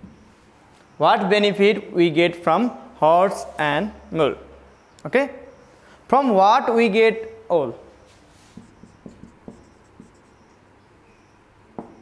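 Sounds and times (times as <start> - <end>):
marker writing on whiteboard: 8.1 - 10.6.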